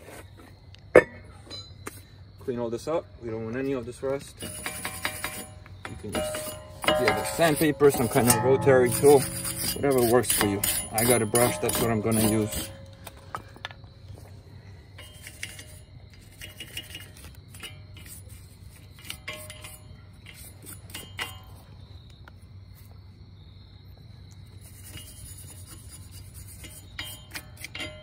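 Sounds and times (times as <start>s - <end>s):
steady low hum: 0.8s - 28.0s
brush scrubbing rusty steel: 3.9s - 13.5s, 15.0s - 21.7s, 24.6s - 28.0s.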